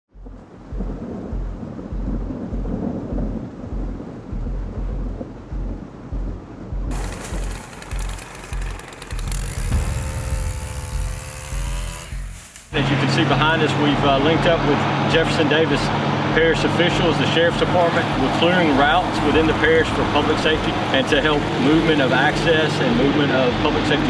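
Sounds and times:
rumbling thunder: 0.1s - 10.0s, 17.5s - 22.1s
music with pulsing low beat: 0.1s - 24.0s
rain: 5.2s - 10.0s, 15.8s - 24.0s.

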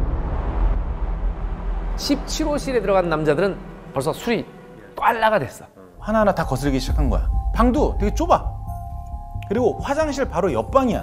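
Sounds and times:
loud low rumble: 0.0s - 5.3s, 6.0s - 8.8s.

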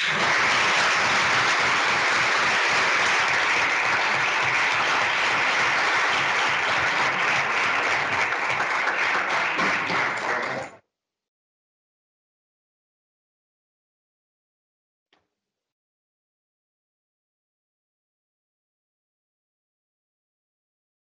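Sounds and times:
audience applauding: 0.0s - 10.8s.

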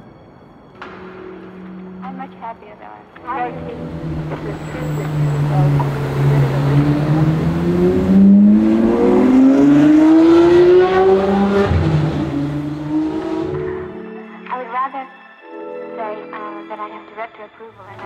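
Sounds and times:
car engine accelerating hard: 3.5s - 14.0s.

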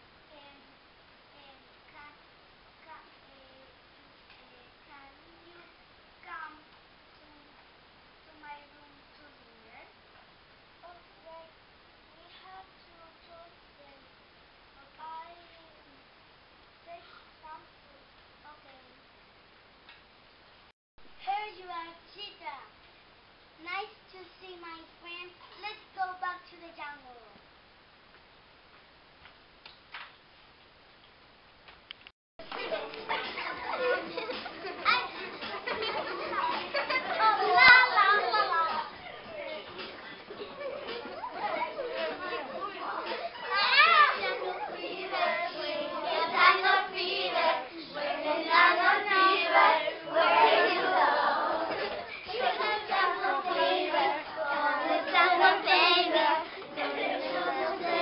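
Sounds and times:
room hiss: 0.0s - 58.0s
children singing: 32.5s - 58.0s.

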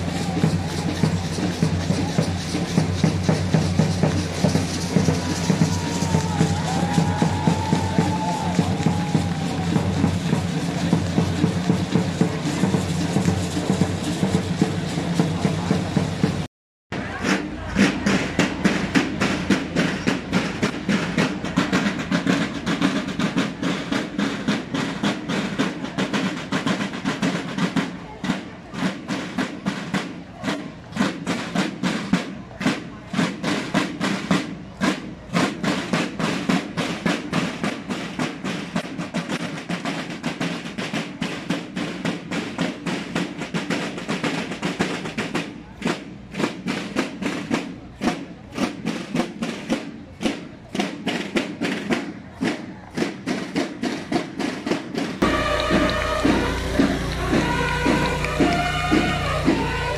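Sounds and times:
marching band drums cadence: 0.0s - 59.9s.

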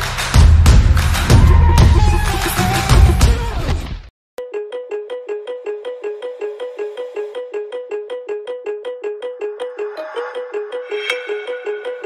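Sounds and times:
song: 8.2s - 12.0s.

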